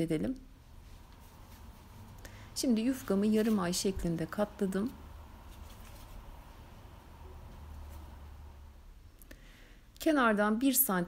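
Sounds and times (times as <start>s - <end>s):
steady low hum: 0.0s - 10.0s
hand rustling pastry sheet: 0.7s - 8.7s.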